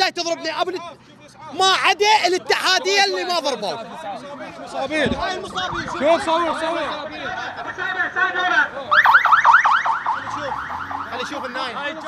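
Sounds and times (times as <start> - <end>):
ambulance siren yelping: 5.5 - 7.0, 8.9 - 11.7.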